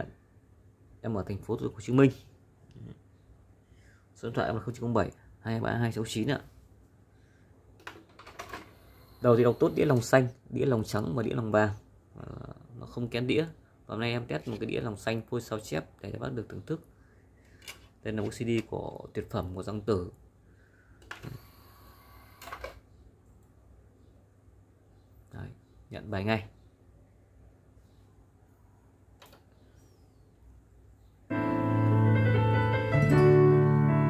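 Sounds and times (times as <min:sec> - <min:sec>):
faint motor whine: 0:08.4 - 0:10.4, 0:21.0 - 0:22.8.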